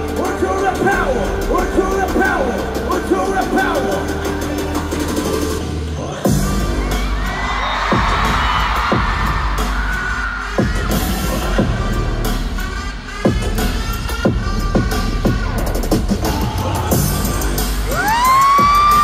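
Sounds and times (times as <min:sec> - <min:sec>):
heavy bass beat: 0:00.0 - 0:19.0
crowd cheering and screaming: 0:06.5 - 0:11.5, 0:17.6 - 0:19.0.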